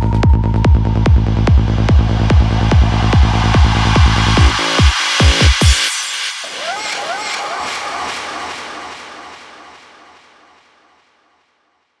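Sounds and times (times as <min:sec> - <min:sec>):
synthesized noise sweep: 0:00.0 - 0:10.8.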